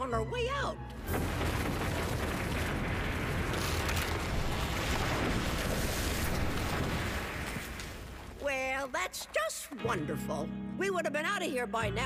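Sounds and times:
cartoon cave-in rumbling: 0.9s - 9.1s.

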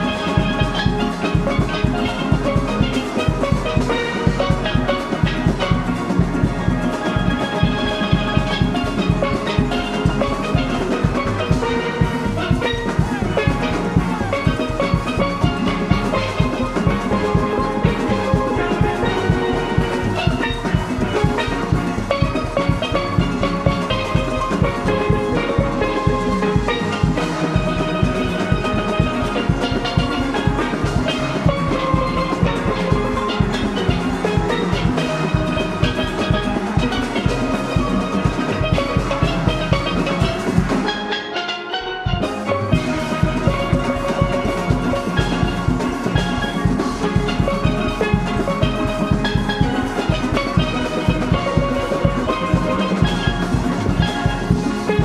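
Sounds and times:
percussion beat: 0.0s - 55.0s
steel pans playing: 0.0s - 55.0s.

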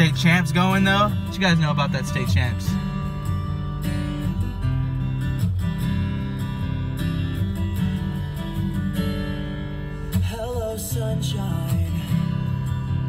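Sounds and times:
strummed acoustic guitar: 0.0s - 13.0s.

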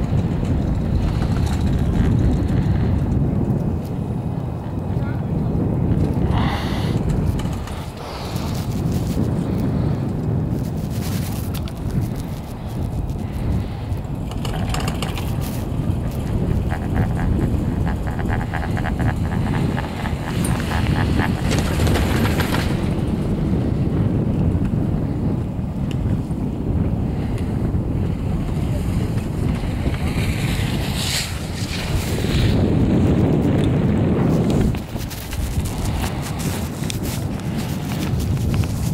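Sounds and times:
rapid clicks of chairlift: 0.0s - 4.5s, 5.9s - 23.6s, 27.3s - 38.9s
steady low rumble: 0.0s - 38.9s
wind buffeting microphone: 0.0s - 38.9s.

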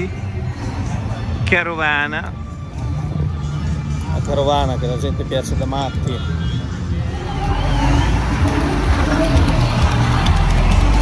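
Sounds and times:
music over loudspeakers: 0.0s - 11.0s
vehicle engines passing: 0.0s - 11.0s.

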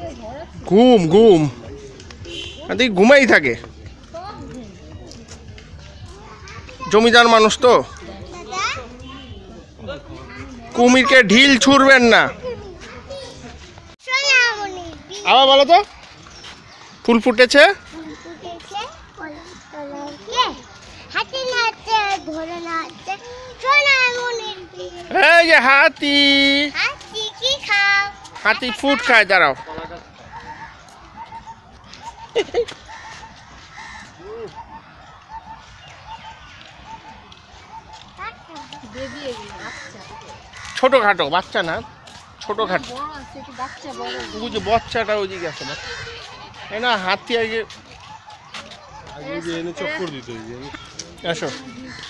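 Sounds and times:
background chatter of voices: 0.0s - 52.0s
bird crying loudly: 30.3s - 38.0s
man's voice nearby: 44.0s - 45.9s, 49.0s - 51.8s.

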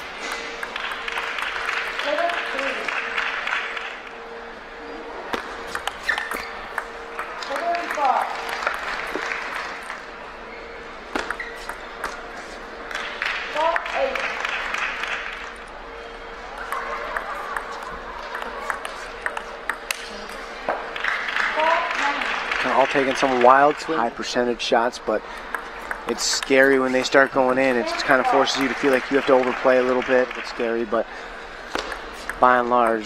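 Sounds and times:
faint steady hum: 0.0s - 33.0s
applause: 0.3s - 4.0s, 7.4s - 10.0s, 13.0s - 15.5s, 20.9s - 24.0s, 28.0s - 30.8s
table tennis ball clicking: 5.4s - 9.3s, 11.2s - 12.2s, 16.6s - 20.4s, 25.4s - 28.3s, 31.7s - 33.0s.

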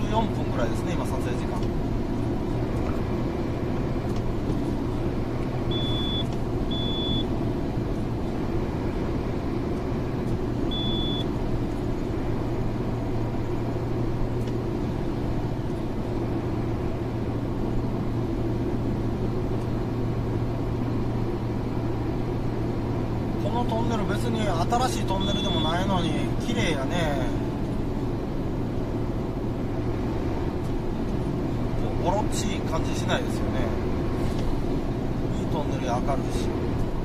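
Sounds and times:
car road and engine noise: 0.0s - 37.0s
short high beeps: 5.7s - 7.3s, 10.7s - 11.3s, 25.2s - 25.8s.

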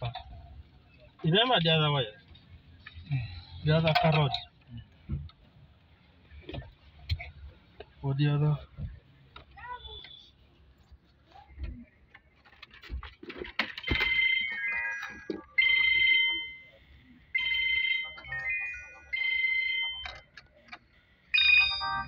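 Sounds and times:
plastic parts clicking and knocking: 12.1s - 16.0s
phone ringtone melody: 13.8s - 20.4s, 21.2s - 22.0s.

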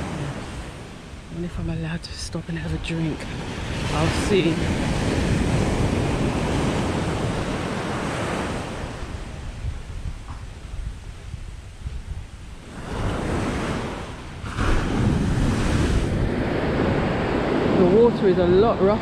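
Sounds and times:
wind buffeting microphone: 0.0s - 19.0s
surf breaking on beach: 3.0s - 11.0s, 11.7s - 19.0s.

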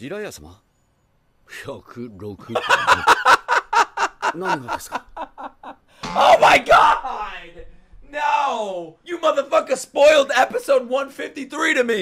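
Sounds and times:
man laughing: 2.5s - 5.8s.

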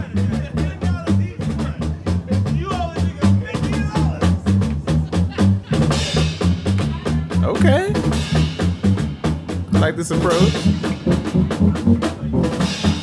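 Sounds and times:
drum kit playing: 0.0s - 13.0s
electric bass line: 0.0s - 13.0s.

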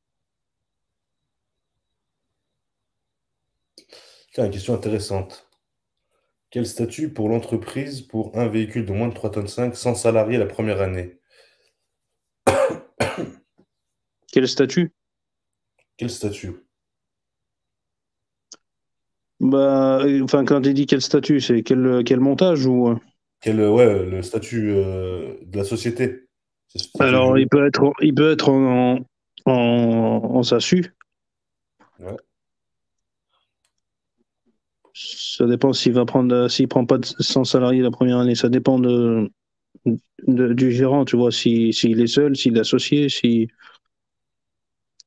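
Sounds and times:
person clearing throat: 12.5s - 13.4s
spoken syllable: 21.9s - 26.2s, 26.8s - 31.0s, 32.0s - 32.2s
faint clicks: 32.9s - 33.9s.

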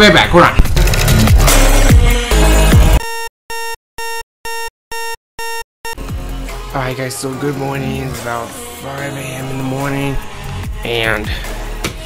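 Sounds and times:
alarm clock beeps: 3.0s - 6.0s.

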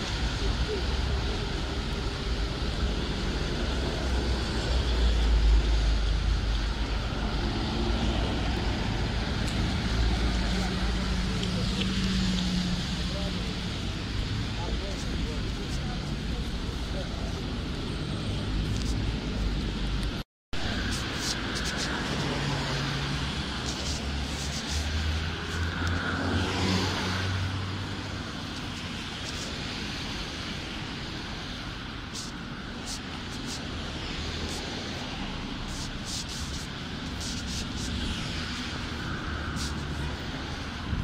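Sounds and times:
cars passing on wet road: 0.0s - 41.0s.

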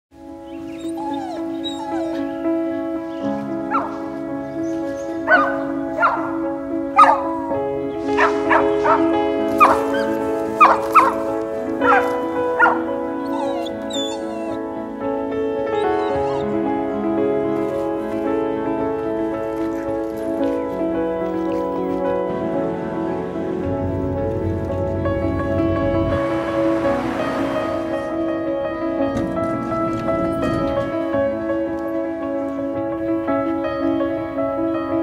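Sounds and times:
slow music with held chords: 0.1s - 35.0s
small dog barking and yelping: 7.0s - 7.3s, 9.6s - 11.2s, 11.8s - 14.6s.

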